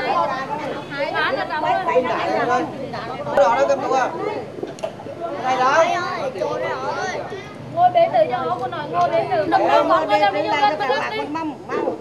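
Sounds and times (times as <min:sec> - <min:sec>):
people chatting: 0:00.0 - 0:12.0.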